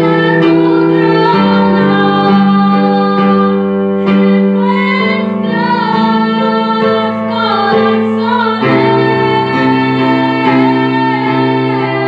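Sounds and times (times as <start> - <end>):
girl and woman singing: 0.0 - 12.0.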